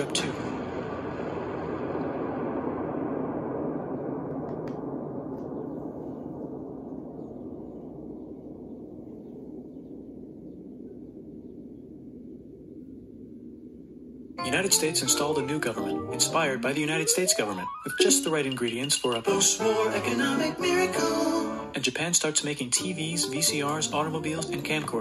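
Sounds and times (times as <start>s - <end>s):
deep explosion rumble: 0.0s - 14.4s.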